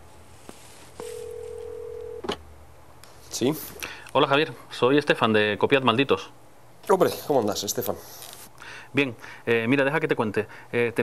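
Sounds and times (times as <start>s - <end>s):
telephone ringback tone: 1.0s - 2.3s.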